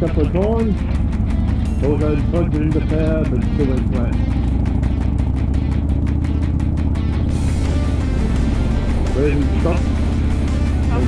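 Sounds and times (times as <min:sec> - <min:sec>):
motorcycle engine cruising: 0:00.0 - 0:11.0
music playing: 0:00.0 - 0:11.0.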